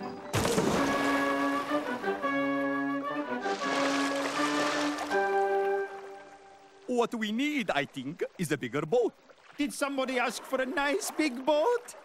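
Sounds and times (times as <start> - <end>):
cartoon background music: 0.0 - 6.4
big splash in water: 0.3 - 2.2, 3.4 - 6.1.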